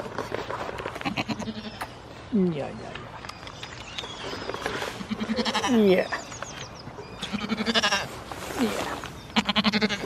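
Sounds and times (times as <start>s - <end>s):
goats bleating: 5.0s - 5.8s, 7.2s - 8.2s, 9.4s - 10.0s.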